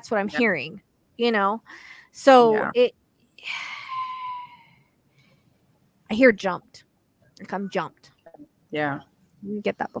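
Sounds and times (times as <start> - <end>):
woman sighing: 3.4 - 4.8.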